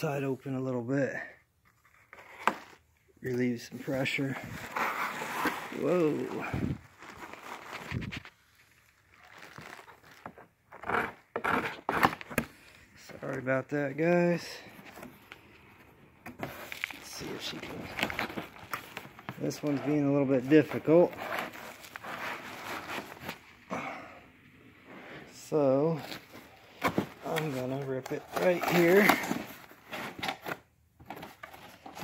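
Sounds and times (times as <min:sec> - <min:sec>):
cardboard and bubble wrap rustling: 0:01.7 - 0:12.6, 0:16.2 - 0:23.6, 0:25.3 - 0:32.0.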